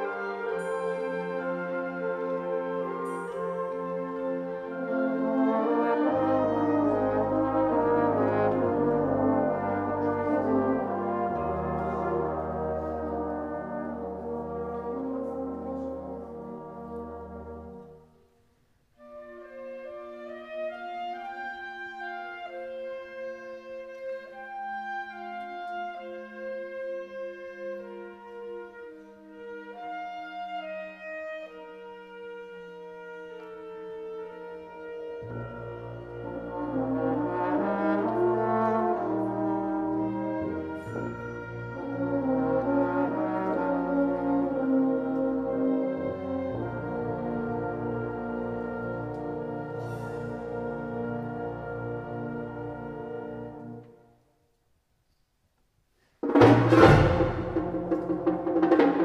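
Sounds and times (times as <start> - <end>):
wind band playing: 0.0 - 18.3, 19.0 - 54.2, 56.2 - 59.0.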